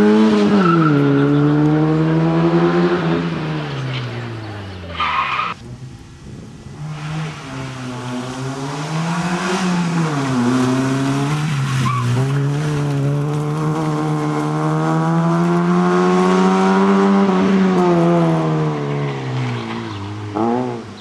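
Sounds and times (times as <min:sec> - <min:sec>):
rally car engine revving: 0:00.0 - 0:21.0.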